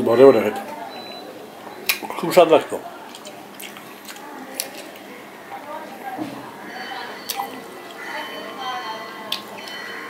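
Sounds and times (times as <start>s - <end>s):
wet chewing mouth sounds: 3.1s - 5.1s.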